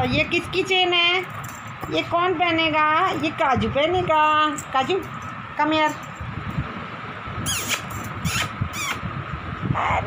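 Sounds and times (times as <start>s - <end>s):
dog squeaks: 7.4s - 9.1s.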